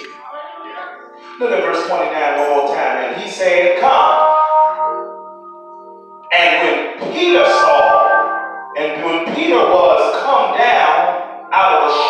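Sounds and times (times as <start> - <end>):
held instrumental chord: 0.0 - 12.0.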